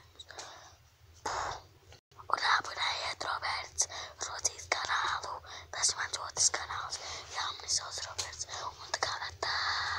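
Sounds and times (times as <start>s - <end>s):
child whispering: 1.3s - 9.9s.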